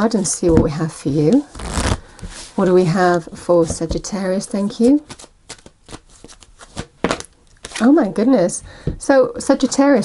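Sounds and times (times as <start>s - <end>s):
cards being shuffled: 4.8s - 7.9s.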